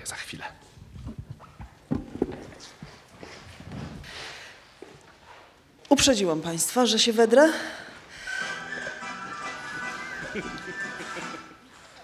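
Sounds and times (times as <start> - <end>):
footsteps: 1.0 - 5.6, 8.0 - 12.0
shuffling: 8.0 - 12.0.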